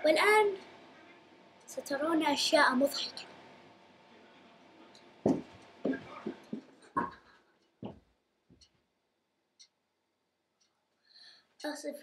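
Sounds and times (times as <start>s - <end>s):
dull thumps on cushions: 5.3s - 7.1s.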